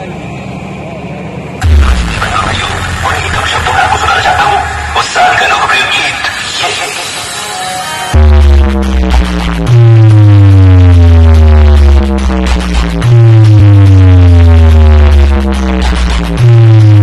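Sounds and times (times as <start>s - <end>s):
deep sliding bass note: 1.4s - 5.0s, 8.2s - 17.0s
loud electronic music: 1.6s - 17.0s
busy beats: 8.2s - 17.0s.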